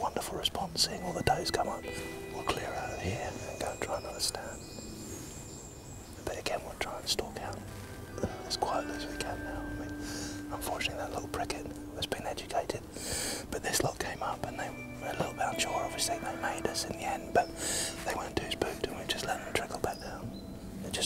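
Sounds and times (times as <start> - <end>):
men whispering: 0.0 - 4.6, 6.2 - 21.0
faint steady tones: 0.0 - 21.0.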